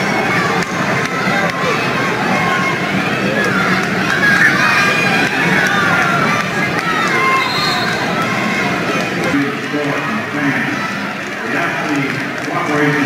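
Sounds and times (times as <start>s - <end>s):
crowd shouting and cheering: 0.0s - 13.0s.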